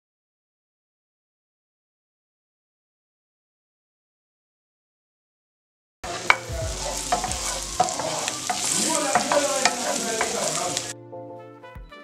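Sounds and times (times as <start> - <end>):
mushrooms sizzling in hot oil: 6.0 - 10.9
wooden spatula knocking in pan: 6.1 - 10.9.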